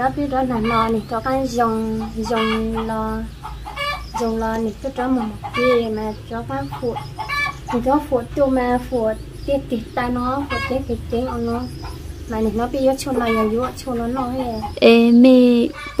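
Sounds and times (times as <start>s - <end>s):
woman talking: 0.0s - 3.3s, 4.1s - 7.1s, 7.7s - 16.0s.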